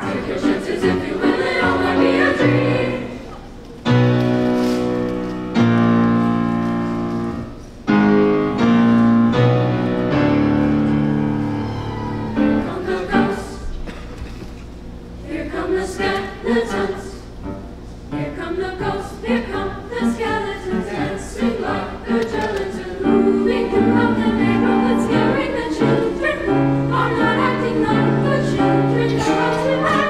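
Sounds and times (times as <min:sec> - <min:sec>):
choir singing: 0:00.0 - 0:03.4, 0:11.4 - 0:13.6, 0:15.2 - 0:17.3, 0:18.1 - 0:30.0.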